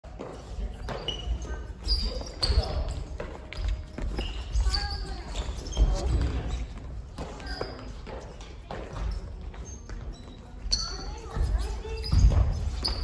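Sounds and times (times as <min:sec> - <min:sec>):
shoes squeaking on wooden floor: 0:00.1 - 0:13.0.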